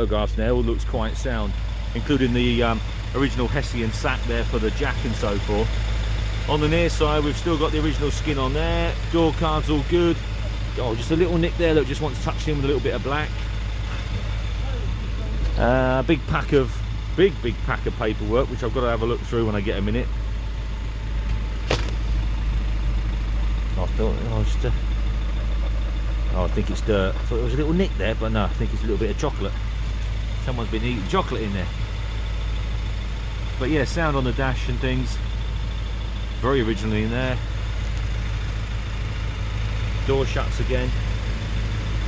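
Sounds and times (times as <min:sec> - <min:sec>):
car engine idling: 0:00.0 - 0:42.0
sharp click: 0:21.2 - 0:22.0.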